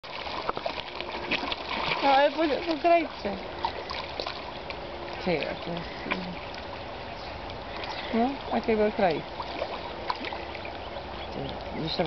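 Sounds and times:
fish splashing at water surface: 0:00.0 - 0:12.0.

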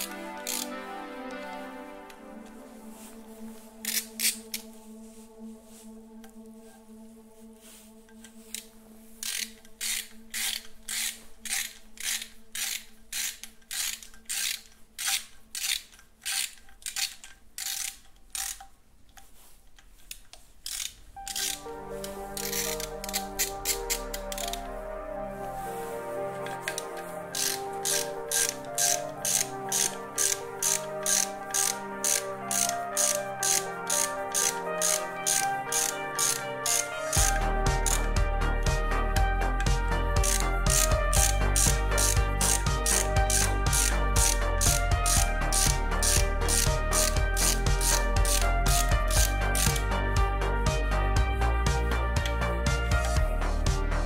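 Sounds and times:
ratchet wrench clicking: 0:00.0 - 0:00.8, 0:03.8 - 0:04.6, 0:08.2 - 0:18.7, 0:20.0 - 0:24.7, 0:26.5 - 0:38.2, 0:39.6 - 0:50.0
background music: 0:00.0 - 0:54.0
bass: 0:37.2 - 0:54.0.

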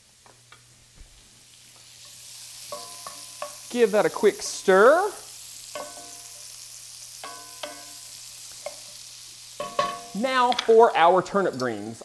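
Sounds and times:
onions sizzling in a pan: 0:00.0 - 0:12.0
wooden spoon knocking on a pan: 0:09.6 - 0:10.7.

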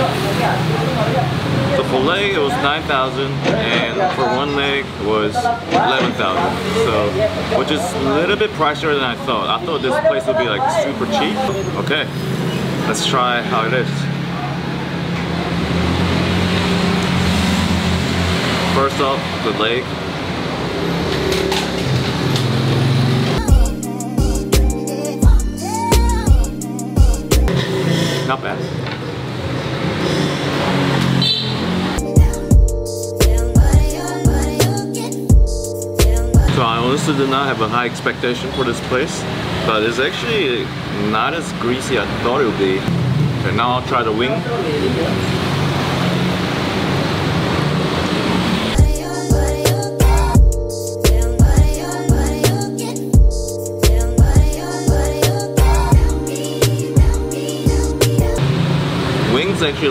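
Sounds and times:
road traffic noise: 0:00.0 - 0:59.9
vehicle engine accelerating: 0:10.9 - 0:23.5, 0:27.4 - 0:32.1, 0:36.4 - 0:48.9, 0:57.8 - 0:59.9
background music with a beat: 0:23.4 - 0:27.5, 0:32.0 - 0:36.6, 0:48.8 - 0:58.4.

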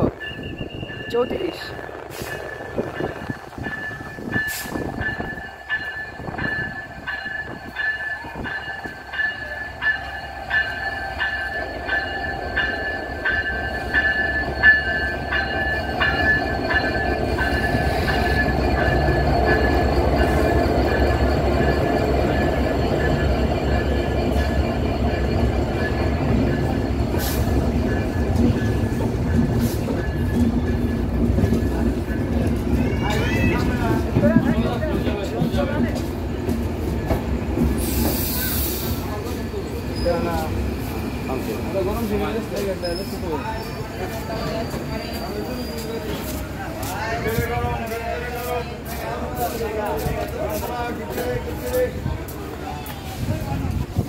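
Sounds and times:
locomotive engine rumble: 0:00.0 - 0:54.0
train coaches rolling past: 0:00.0 - 0:54.0.

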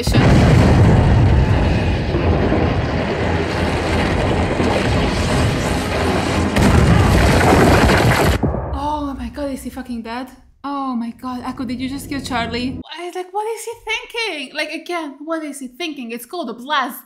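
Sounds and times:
rumbling explosion: 0:00.0 - 0:10.1.

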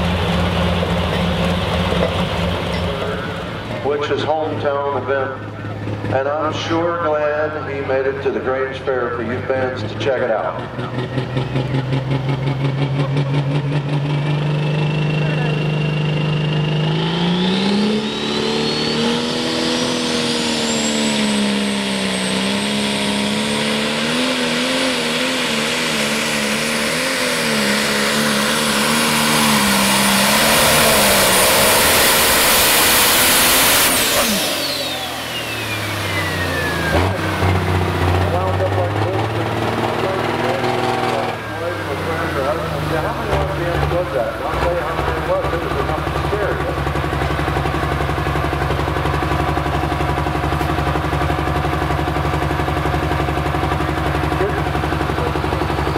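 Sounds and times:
high turbo whine: 0:00.0 - 0:55.9
tractor engine revving under load: 0:00.0 - 0:55.9.

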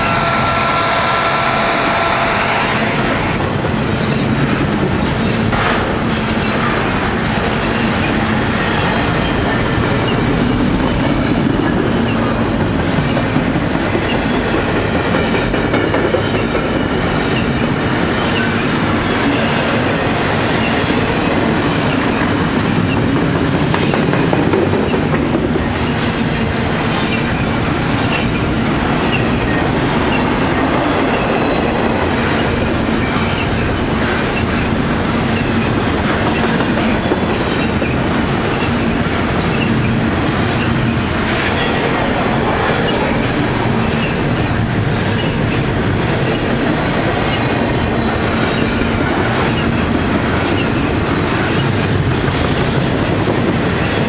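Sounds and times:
steel wheels rushing on rail: 0:00.0 - 0:54.0.

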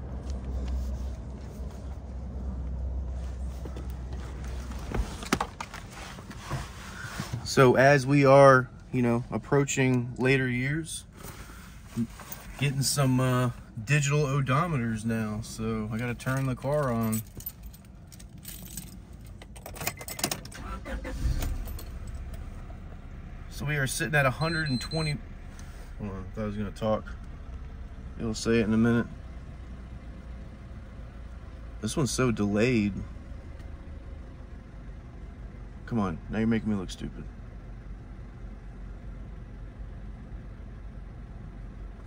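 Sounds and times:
car engine starting and idling: 0:00.0 - 0:42.0
car keys jangling in ignition: 0:15.8 - 0:22.5.

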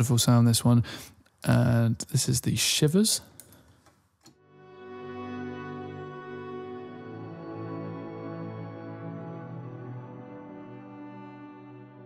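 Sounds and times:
ambient pad chord: 0:04.4 - 0:12.0.

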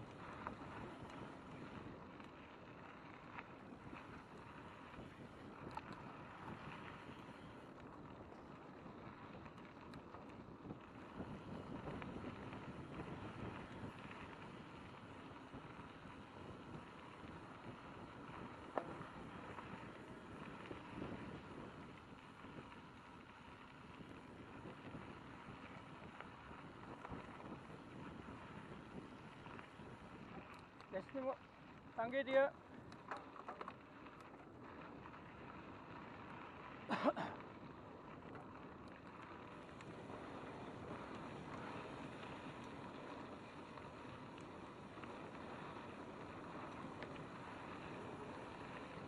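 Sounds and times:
bike tyres and wind rushing: 0:00.0 - 0:49.0.

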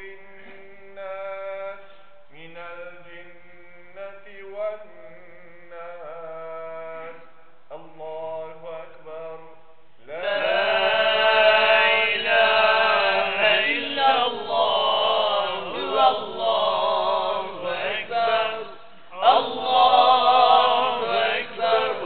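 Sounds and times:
man chanting recitation: 0:00.0 - 0:14.5.

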